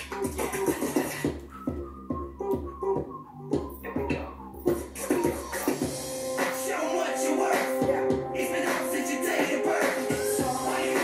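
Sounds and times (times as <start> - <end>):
instrumental pop music with beat: 0.0 - 11.0.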